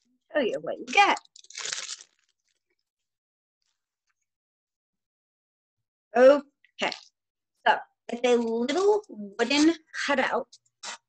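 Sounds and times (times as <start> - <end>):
plastic packaging crinkling: 1.0 - 2.8.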